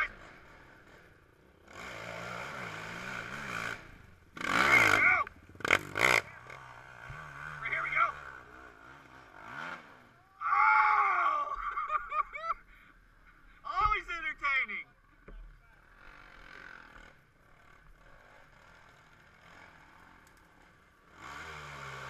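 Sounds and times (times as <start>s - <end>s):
off-road engine revving: 0.0s - 22.0s
spectators shouting: 10.2s - 11.7s.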